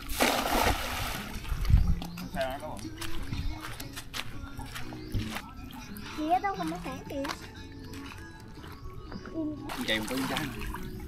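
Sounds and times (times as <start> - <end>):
water splashing: 0.0 - 1.8, 9.7 - 11.0.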